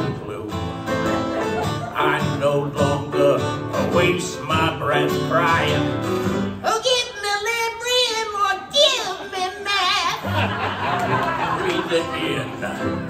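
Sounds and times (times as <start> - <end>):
acoustic guitar: 0.0 - 13.0.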